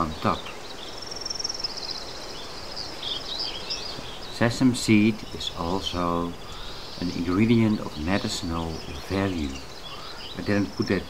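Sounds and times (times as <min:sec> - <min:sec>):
small birds chirping: 0:00.0 - 0:11.0
steady background hiss: 0:00.0 - 0:11.0.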